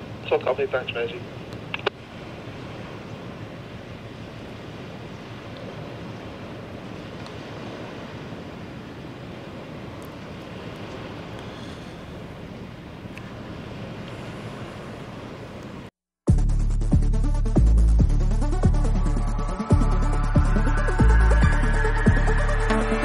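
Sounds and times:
river water washing: 0.0 - 15.9, 18.5 - 23.0.

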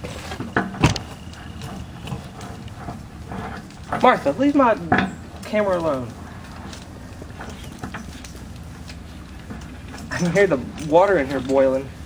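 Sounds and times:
steady low rumble: 0.7 - 12.0.

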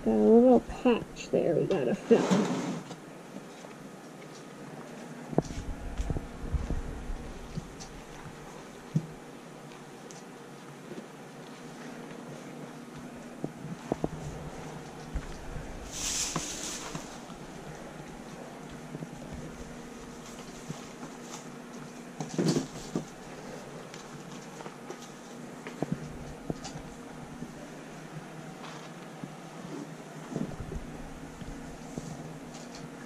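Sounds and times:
low mechanical hum: 0.0 - 33.0
hay rustling: 14.1 - 21.6.

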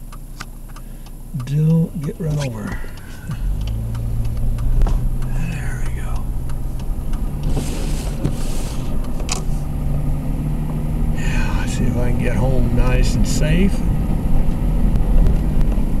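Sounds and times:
car engine humming: 0.0 - 16.0
faint clicks: 0.1 - 7.6.

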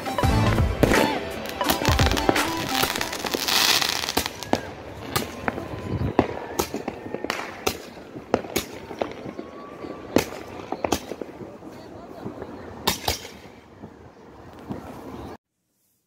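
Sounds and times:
sharp firework bangs: 0.8 - 9.4
firework hissing burst: 0.9 - 4.6.

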